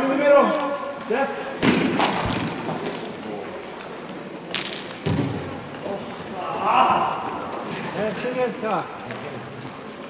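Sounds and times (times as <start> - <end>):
brooms striking ball on ice: 1.6 - 3.2.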